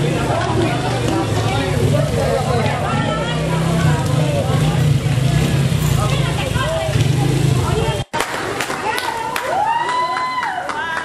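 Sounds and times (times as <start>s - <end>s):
crowd of overlapping voices: 0.0s - 11.0s.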